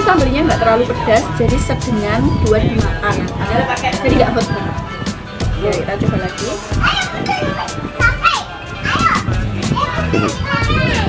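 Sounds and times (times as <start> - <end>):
background music with steady beat: 0.0 - 11.0
children chattering at play: 0.0 - 11.0.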